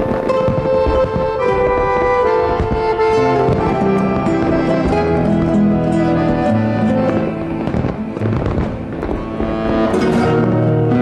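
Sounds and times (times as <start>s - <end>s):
fireworks bursting and crackling: 0.0s - 11.0s
orchestral music: 0.0s - 11.0s.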